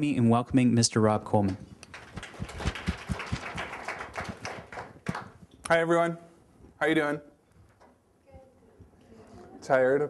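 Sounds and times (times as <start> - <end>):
audience applauding: 1.9 - 5.4.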